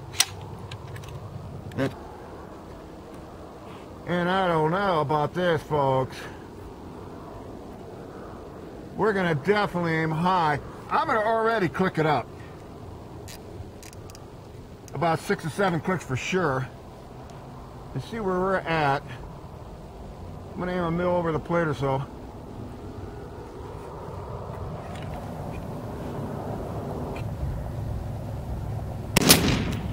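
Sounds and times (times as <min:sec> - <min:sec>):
rifle scope turret clicks: 0:00.0 - 0:01.3, 0:13.2 - 0:15.0
outdoor background noise: 0:00.0 - 0:29.9.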